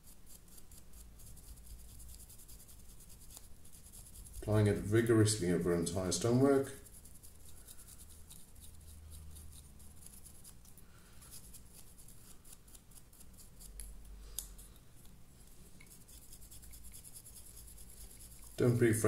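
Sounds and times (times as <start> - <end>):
brush scratching on stone: 0.0 - 14.1, 15.8 - 19.0.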